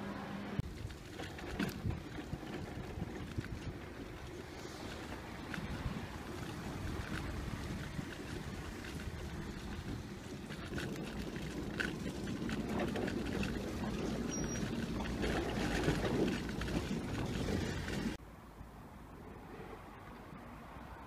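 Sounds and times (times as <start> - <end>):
shopping trolley wheels rumbling: 0.0 - 18.2
trolley rattling and knocking: 0.6 - 18.2.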